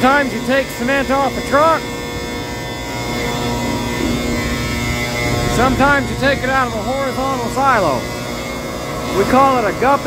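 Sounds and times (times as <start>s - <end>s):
cement blower drone: 0.0s - 10.0s
rush of air: 5.1s - 7.6s.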